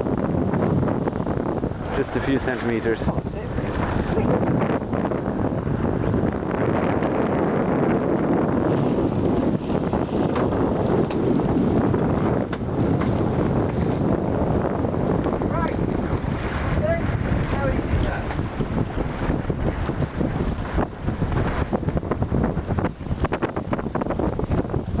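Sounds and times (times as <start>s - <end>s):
water rushing along hull: 0.0s - 25.0s
wind buffeting microphone: 0.0s - 25.0s.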